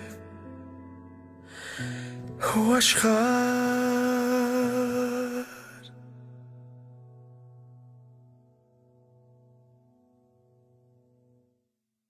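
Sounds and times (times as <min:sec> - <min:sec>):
man singing a long note: 0:02.4 - 0:06.2.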